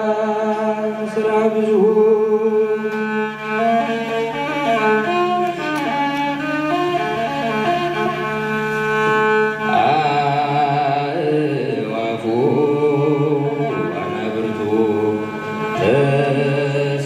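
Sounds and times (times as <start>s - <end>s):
musical accompaniment with drone: 0.0s - 17.0s
man chanting a hymn: 9.6s - 17.0s.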